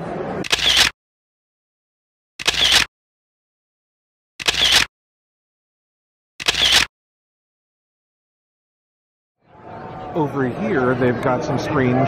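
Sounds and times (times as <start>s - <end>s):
camera shutter clicks: 0.4s - 1.0s, 2.4s - 2.9s, 4.4s - 4.9s, 6.4s - 6.9s.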